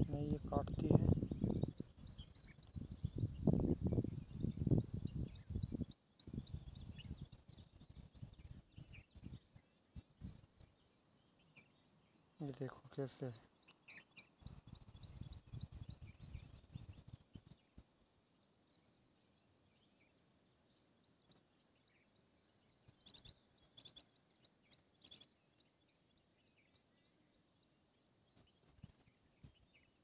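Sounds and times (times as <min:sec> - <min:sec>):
low rumble on microphone: 0:00.0 - 0:10.4.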